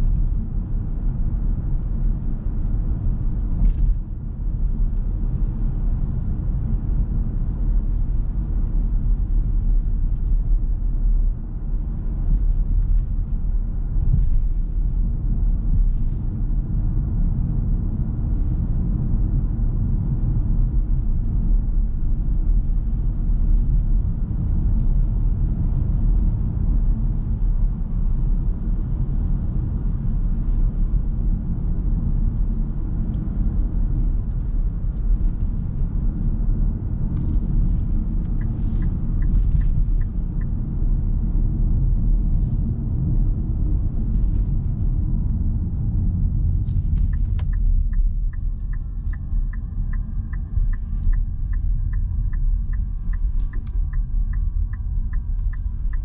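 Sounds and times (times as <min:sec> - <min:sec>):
road and tyre rumble: 0:00.0 - 0:56.0
turn signal ticking: 0:37.1 - 0:41.2, 0:46.4 - 0:56.0.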